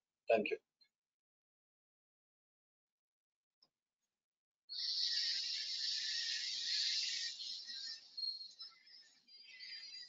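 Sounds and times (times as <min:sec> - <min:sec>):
steady high-pitched hiss: 0:04.8 - 0:10.0.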